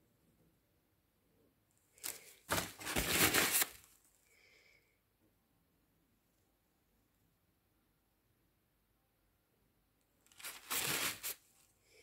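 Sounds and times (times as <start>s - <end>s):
rustling crinkling handling noise: 2.0s - 4.1s, 10.2s - 11.8s.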